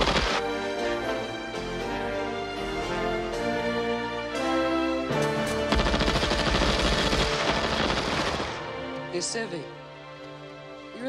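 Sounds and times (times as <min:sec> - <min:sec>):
automatic rifle fire: 0:05.7 - 0:08.8.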